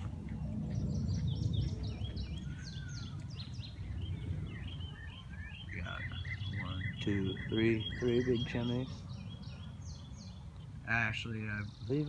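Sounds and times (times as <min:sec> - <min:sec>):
songbirds chirping: 0:00.0 - 0:12.0
steady low rumble: 0:00.0 - 0:12.0.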